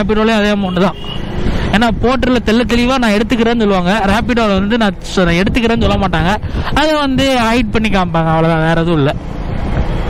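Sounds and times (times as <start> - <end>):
man talking: 0.0 - 1.1, 1.7 - 9.2
motorcycle engine and road noise: 0.0 - 10.0.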